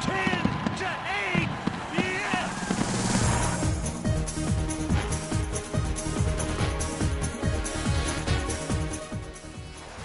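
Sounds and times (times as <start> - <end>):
excited broadcaster commentating: 0.0 - 2.7.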